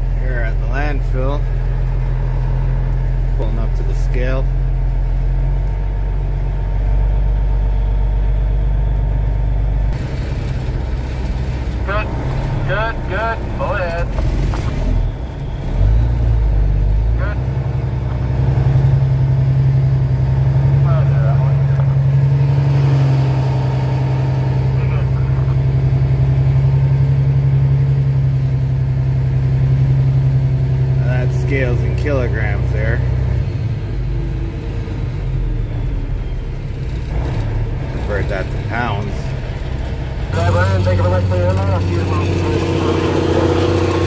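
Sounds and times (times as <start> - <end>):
diesel truck engine running: 0.0 - 44.0.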